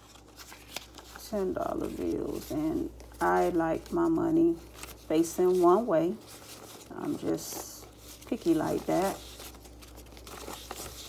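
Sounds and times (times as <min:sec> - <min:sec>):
paper bills rustling and crinkling: 0:00.0 - 0:11.0.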